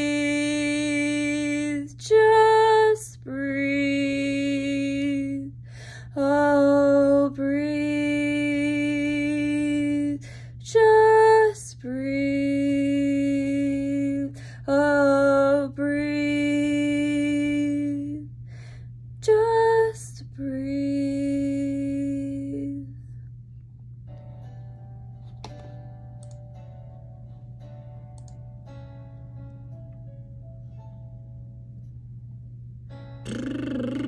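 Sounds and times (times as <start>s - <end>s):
woman singing wordless notes: 0.0s - 18.3s, 19.2s - 23.0s, 33.3s - 34.0s
faint guitar music: 24.0s - 34.0s.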